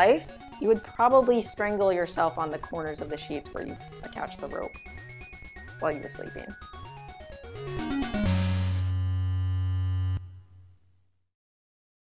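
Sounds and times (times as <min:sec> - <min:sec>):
electronic jingle chord: 0:00.0 - 0:10.4.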